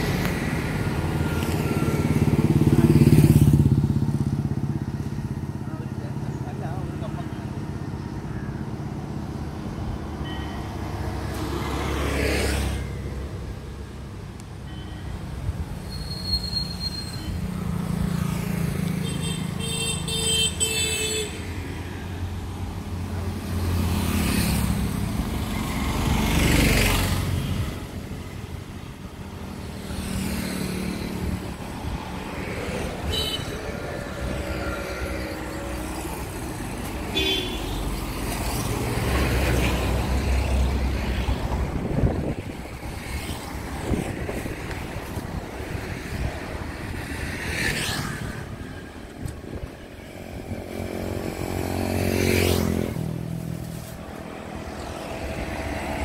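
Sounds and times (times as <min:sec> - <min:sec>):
passing vehicle engine: 0:00.0 - 0:09.4, 0:29.7 - 0:56.0
highway traffic: 0:00.0 - 0:56.0
vehicle horn honking: 0:37.1 - 0:37.8.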